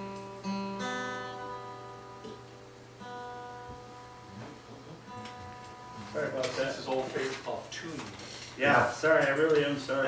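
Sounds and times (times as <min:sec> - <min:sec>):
acoustic guitar note ringing: 0:00.0 - 0:06.8.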